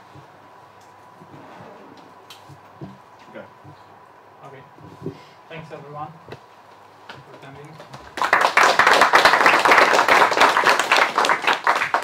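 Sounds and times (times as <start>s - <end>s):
audience applauding: 7.9s - 12.0s.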